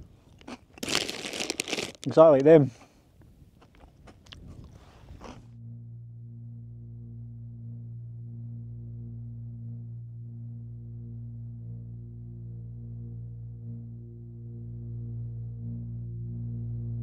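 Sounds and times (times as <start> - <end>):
crunching and chewing snack: 0.2 - 2.3, 3.6 - 5.5
music of held low tones: 5.4 - 17.0.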